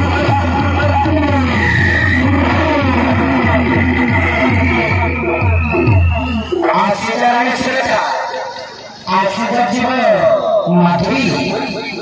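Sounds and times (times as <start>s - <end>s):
folk music over loudspeaker: 0.0s - 12.0s.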